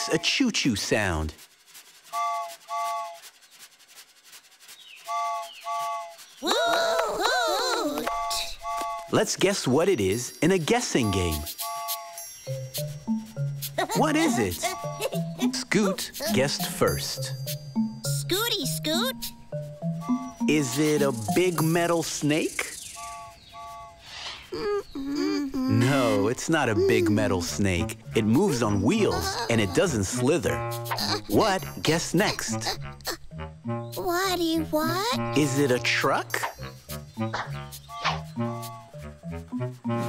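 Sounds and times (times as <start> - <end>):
steam whistle toots: 2.1 - 3.2
voice crying woo-hoo: 6.4 - 8.1.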